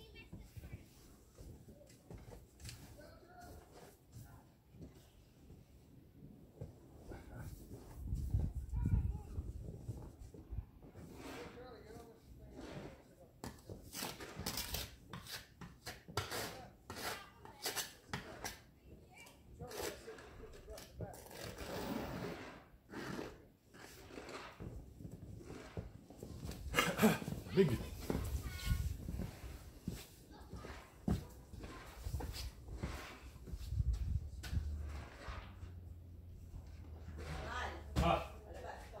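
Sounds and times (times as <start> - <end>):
scraping snow off windshield: 11.0 - 13.0, 21.5 - 26.7, 27.9 - 35.8.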